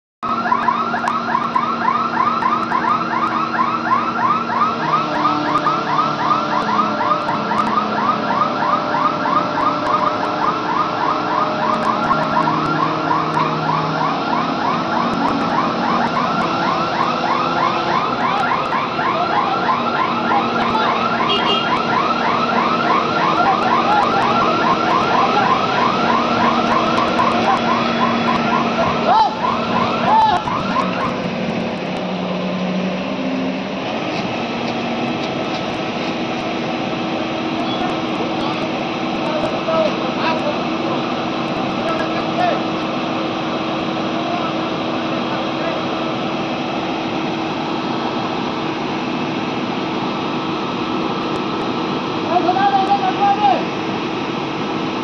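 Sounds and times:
warbling electronic warning alarm: 0:00.2 - 0:33.6, 0:35.0 - 0:53.3
crane engine running: 0:00.2 - 0:55.0.

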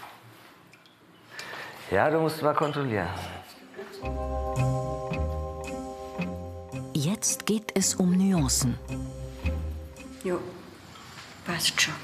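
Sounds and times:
person speaking: 0:06.8 - 0:09.5.

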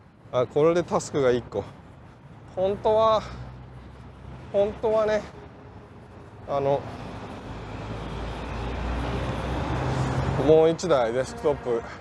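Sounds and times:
vehicle low rumble: 0:00.0 - 0:11.2.

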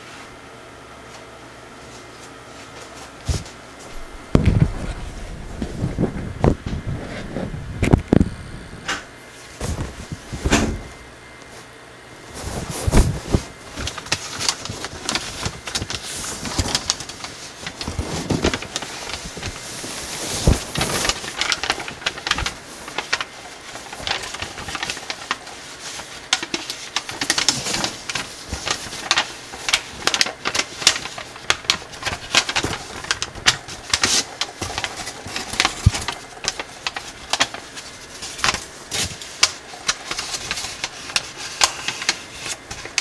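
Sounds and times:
foil paper rustling and crinkling: 0:01.8 - 0:43.0.

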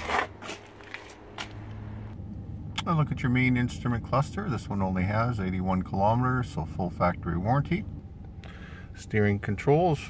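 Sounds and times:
engine idling hum: 0:00.0 - 0:10.0.

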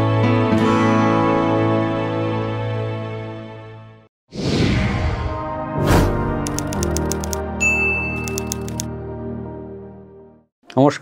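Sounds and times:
typewriter key clicks: 0:06.5 - 0:07.4, 0:08.2 - 0:08.9
typewriter bell ding: 0:06.5 - 0:08.8
soft background music: 0:06.5 - 0:10.0.

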